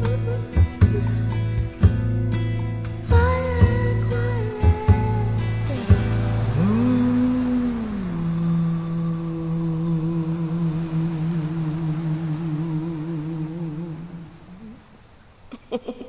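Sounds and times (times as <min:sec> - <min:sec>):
person humming a long note: 0:03.2 - 0:14.9.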